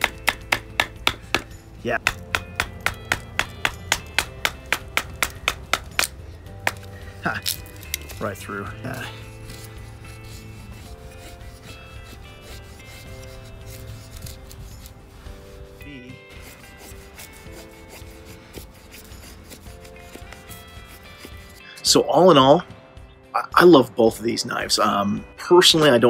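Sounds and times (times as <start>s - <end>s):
knife scraping wooden stick: 0.0s - 21.7s
soft background music: 0.0s - 26.0s.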